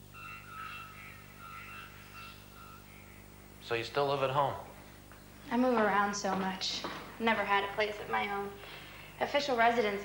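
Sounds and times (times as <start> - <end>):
birds chirping: 0.0 - 6.8
steady low hum: 0.0 - 10.0.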